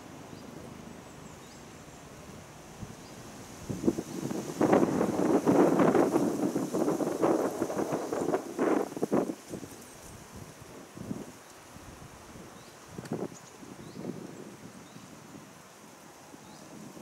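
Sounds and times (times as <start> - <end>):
faint steady high hiss: 0.0 - 17.0
wind buffeting microphone: 2.8 - 15.6.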